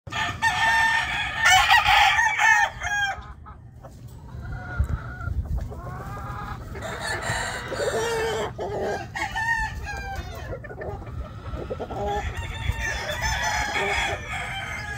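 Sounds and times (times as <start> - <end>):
rooster crowing: 0.1 - 3.2, 6.8 - 10.5, 12.0 - 14.9
rooster clucking: 0.1 - 14.9.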